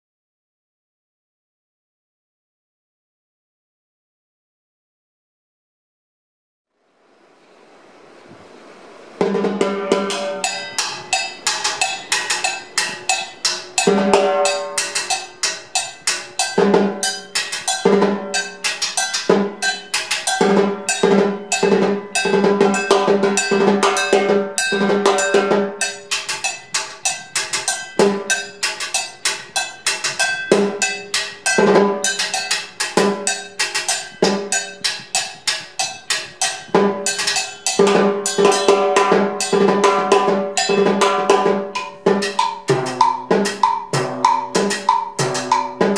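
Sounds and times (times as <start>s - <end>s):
ringing drum head hits: 9.2s - 45.9s
stick strokes on timbale shells: 9.2s - 45.9s
cowbell: 9.4s - 45.9s.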